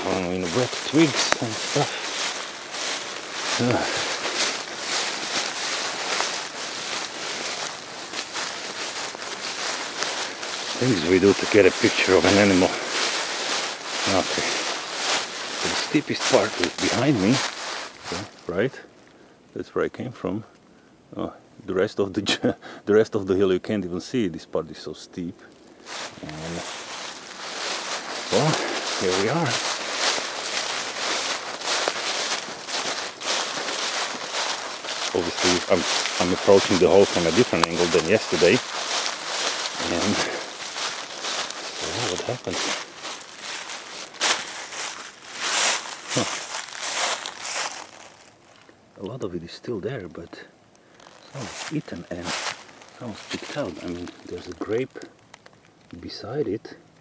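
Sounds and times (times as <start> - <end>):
footsteps crunching through dry leaves: 0.0 - 18.8, 25.7 - 48.8, 50.8 - 55.7.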